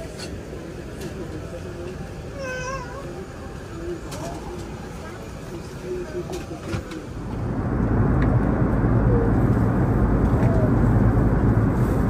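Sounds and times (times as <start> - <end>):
airplane cabin noise: 0.0 - 12.0.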